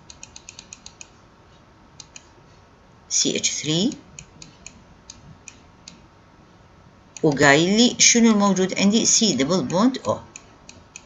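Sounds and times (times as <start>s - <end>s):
computer mouse clicking: 0.0s - 1.2s, 2.0s - 2.3s, 3.9s - 6.0s, 9.7s - 11.0s.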